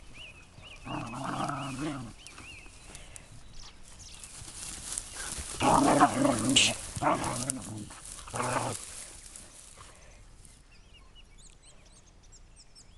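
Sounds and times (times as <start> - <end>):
dogs growling and barking: 0.8 - 2.2, 5.5 - 9.2.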